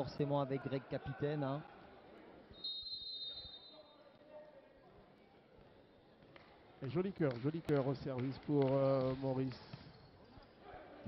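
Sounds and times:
faint crowd murmur: 0.8s - 2.6s
referee's whistle: 2.5s - 4.1s.

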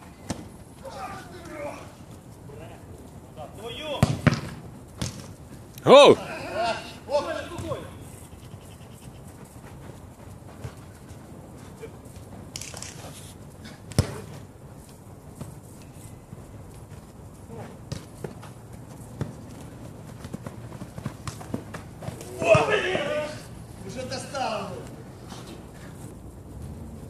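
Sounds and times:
outdoor background noise: 0.0s - 27.0s
football kick: 3.9s - 5.3s, 13.9s - 14.4s.

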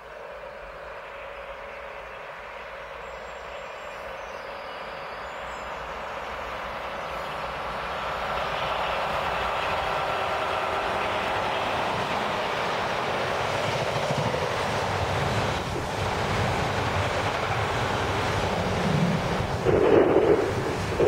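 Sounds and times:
electric locomotive passing: 0.0s - 21.0s
freight wagons rumbling on rails: 0.0s - 21.0s.

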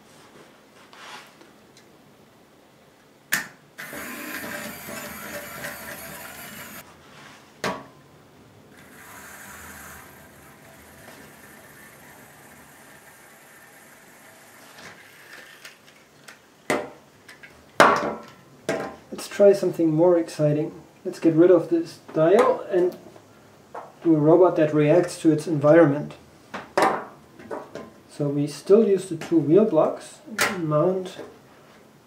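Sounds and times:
small electric motor whirring: 3.8s - 6.8s, 8.8s - 16.0s.

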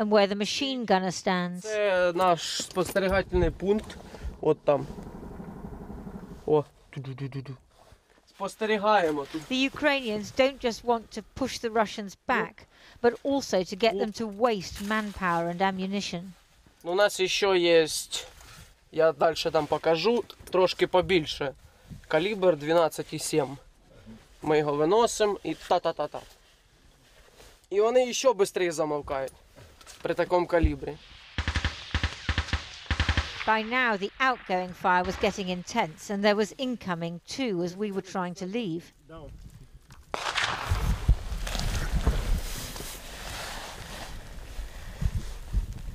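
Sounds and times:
steady low rumble: 3.0s - 6.6s
machine-gun fire: 31.2s - 35.8s, 40.1s - 41.3s
voice speaking: 33.5s - 36.7s.

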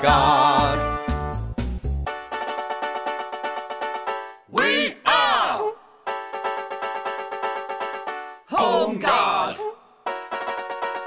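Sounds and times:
chord strummed rapidly: 2.0s - 4.3s, 6.1s - 8.3s, 10.1s - 11.0s.

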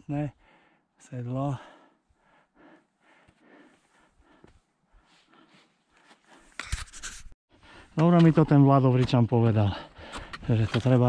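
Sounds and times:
person breathing heavily: 0.4s - 1.0s, 1.6s - 6.5s, 9.8s - 10.4s.

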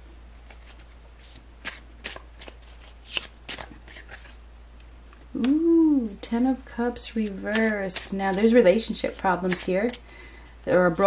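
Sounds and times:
cards shuffling: 0.4s - 4.4s, 7.1s - 10.0s
woman saying ooh: 5.4s - 6.3s.

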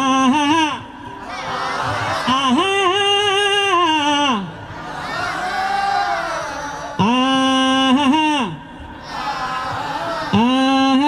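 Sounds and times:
man singing long ah: 0.0s - 1.0s, 2.2s - 4.6s, 7.0s - 8.8s, 10.2s - 11.0s
audience singing: 1.2s - 3.0s, 4.7s - 7.1s, 9.0s - 10.7s.

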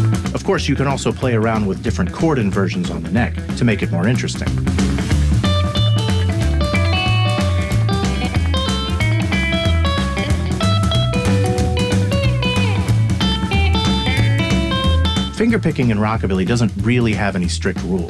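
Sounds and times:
electric guitar fingerpicked blues: 0.0s - 15.6s.

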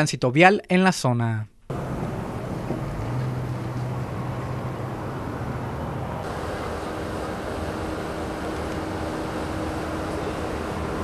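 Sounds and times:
traffic idling and creeping: 1.7s - 11.0s.

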